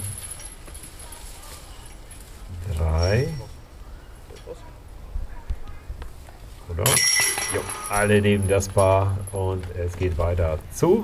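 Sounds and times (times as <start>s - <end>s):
disc striking metal chains: 0.0s - 2.2s, 6.8s - 9.6s
chains jangling and ringing: 0.0s - 2.4s, 6.8s - 9.4s.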